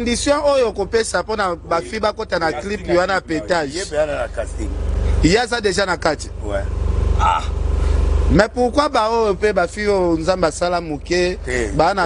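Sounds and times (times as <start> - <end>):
engine idling rumble: 0.0 - 12.0.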